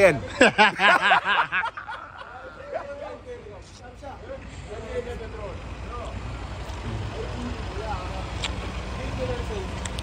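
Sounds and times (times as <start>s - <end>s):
light clicks: 9.8s - 10.0s.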